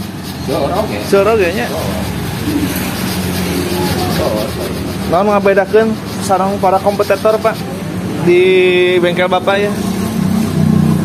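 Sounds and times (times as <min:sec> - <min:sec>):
low mechanical hum: 0:00.0 - 0:09.2.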